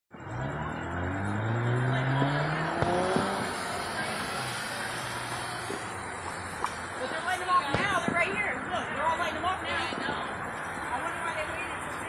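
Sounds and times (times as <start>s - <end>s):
car engine accelerating: 0.1s - 7.5s
tyre and road noise: 0.1s - 12.0s.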